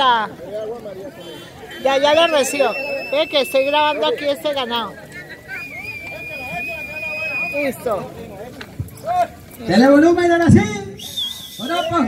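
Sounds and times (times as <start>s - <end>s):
faint background talking: 0.0s - 10.0s
high-pitched whistle-like tone: 1.8s - 4.1s, 5.5s - 7.8s, 11.0s - 12.0s.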